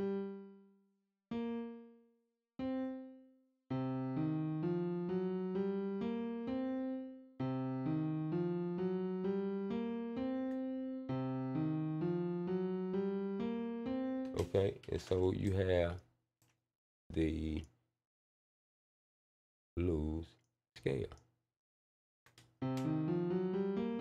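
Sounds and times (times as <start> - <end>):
piano notes: 0.0 - 0.6, 1.3 - 2.0, 2.6 - 15.3, 22.6 - 24.0
rising run of piano notes: 3.7 - 14.4, 22.6 - 24.0.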